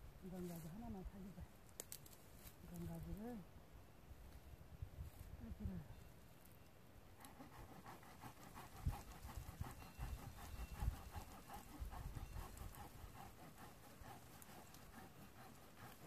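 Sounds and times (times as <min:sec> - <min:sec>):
dog panting: 0:07.2 - 0:16.0.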